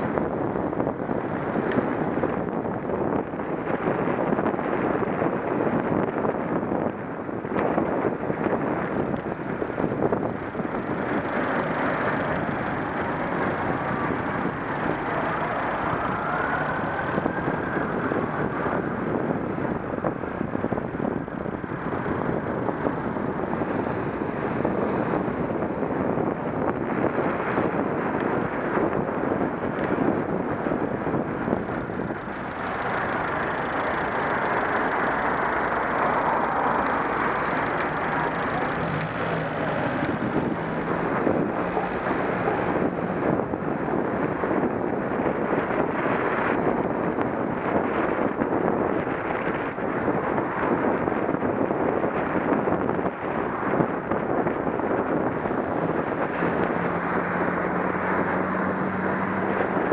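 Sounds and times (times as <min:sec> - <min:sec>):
road traffic: 0:00.0 - 0:59.9
wind rushing over microphone: 0:00.0 - 0:59.9.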